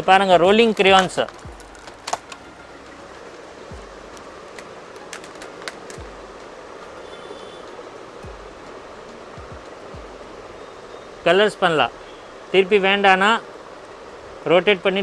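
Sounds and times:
busy shop background noise: 0.0s - 9.1s
soft low bumps: 0.4s - 2.0s, 3.7s - 4.6s, 6.0s - 6.6s, 8.2s - 10.5s
plastic pack crinkling: 0.6s - 2.4s, 4.5s - 6.0s.

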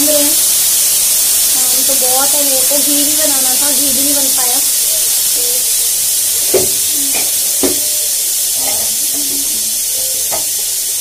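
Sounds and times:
pressure cooker steam hissing: 0.0s - 11.0s.

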